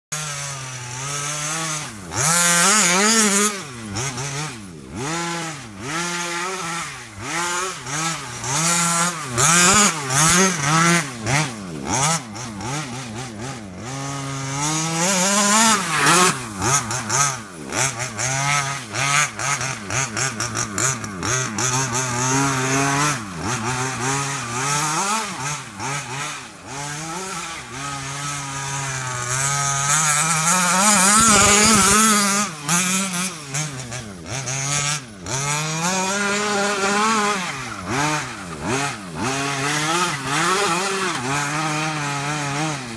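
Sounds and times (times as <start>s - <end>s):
two-stroke engine revving: 0.1s - 42.9s.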